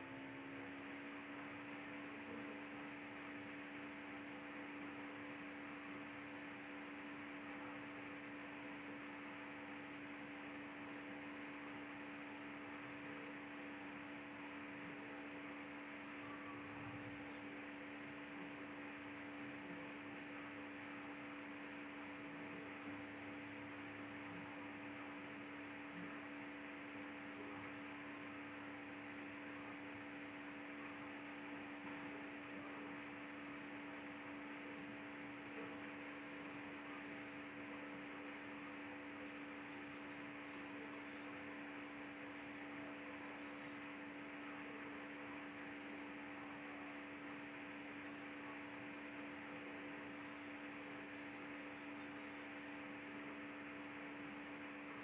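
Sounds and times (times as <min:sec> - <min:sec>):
constant hiss: 0:00.0 - 0:55.0
faint electrical hum: 0:00.0 - 0:55.0.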